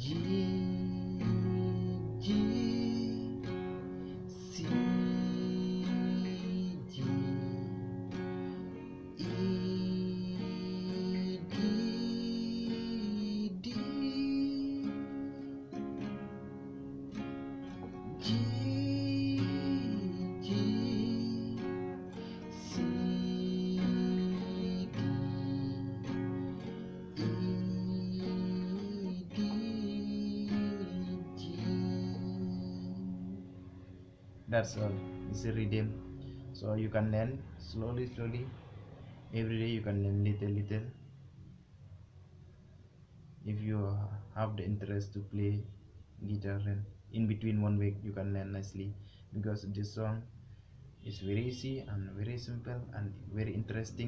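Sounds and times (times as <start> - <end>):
acoustic guitar strumming: 0.0 - 39.4.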